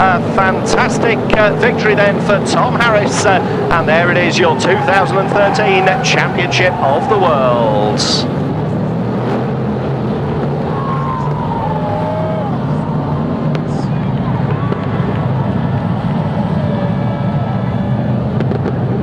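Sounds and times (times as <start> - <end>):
race car engines running: 0.0 - 19.0.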